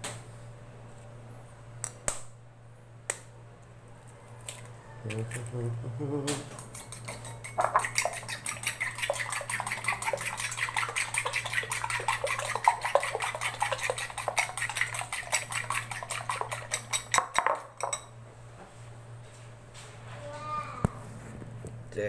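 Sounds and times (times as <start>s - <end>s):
utensil clinking against bowl: 6.6s - 18.1s.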